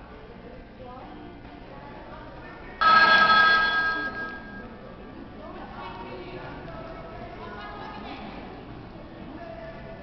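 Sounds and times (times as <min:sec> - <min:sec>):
bell ringing: 0:02.8 - 0:04.7.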